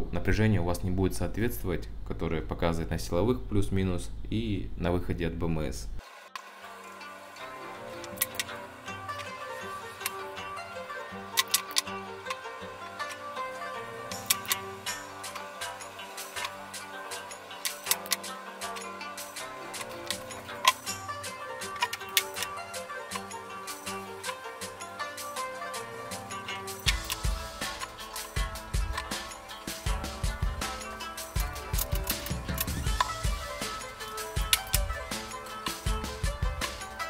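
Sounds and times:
clicking percussion: 0:08.0 - 0:09.4, 0:14.1 - 0:24.4, 0:25.0 - 0:37.0.

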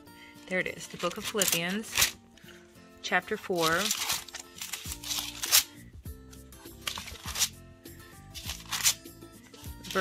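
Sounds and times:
soft background music: 0:00.0 - 0:10.0
pages flipping: 0:00.9 - 0:02.2, 0:03.6 - 0:05.7, 0:06.6 - 0:07.6, 0:08.3 - 0:09.0, 0:09.8 - 0:10.0.

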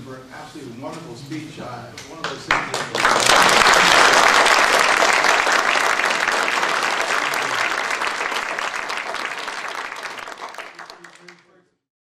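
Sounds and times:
audience applauding: 0:02.2 - 0:11.6.

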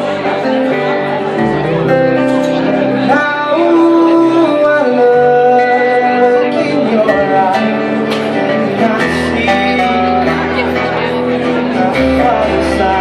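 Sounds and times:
acoustic guitars: 0:00.0 - 0:13.0
bass: 0:00.0 - 0:13.0
keyboard: 0:00.0 - 0:13.0
person singing: 0:02.7 - 0:13.0.

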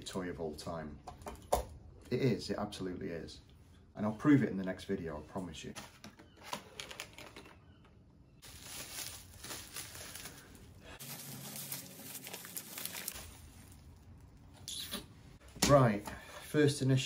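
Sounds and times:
paper and plastic bag crinkling: 0:08.4 - 0:14.3.

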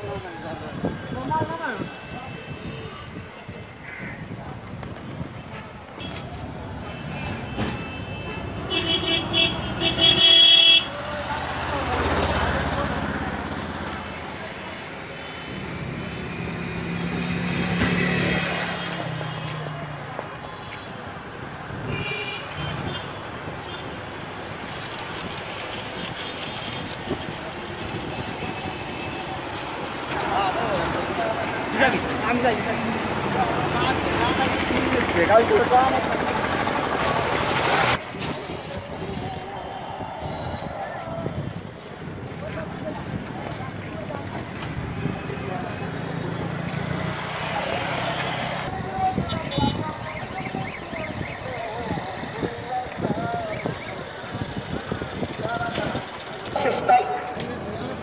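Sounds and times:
vehicles passing by: 0:00.0 - 0:58.0
vehicle horn honking: 0:06.9 - 0:10.9, 0:21.9 - 0:23.1.

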